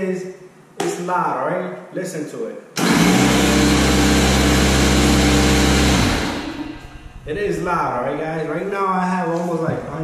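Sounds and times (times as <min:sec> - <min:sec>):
air compressor running: 0:02.8 - 0:07.7.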